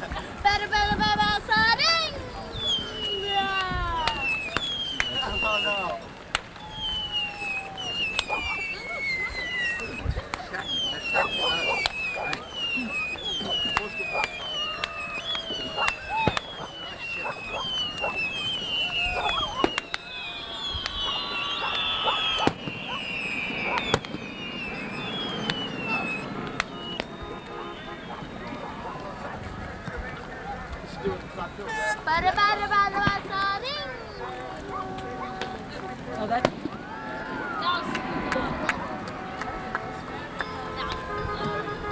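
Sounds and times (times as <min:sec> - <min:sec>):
fireworks bangs and crackles: 0:00.0 - 0:41.9
fireworks falling whistles: 0:01.2 - 0:41.9.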